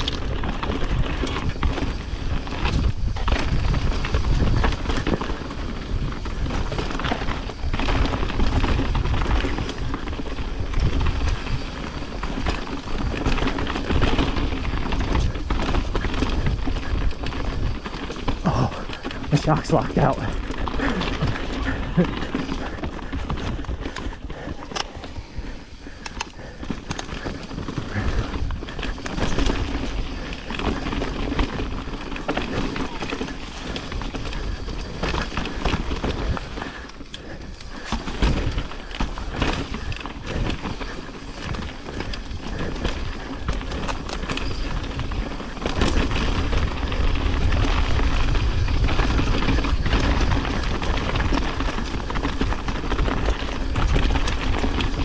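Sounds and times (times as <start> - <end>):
bike knocking and rattling: 0.0 - 55.0
bike tyres rolling over dirt: 0.0 - 55.0
wind noise on microphone: 0.0 - 55.0.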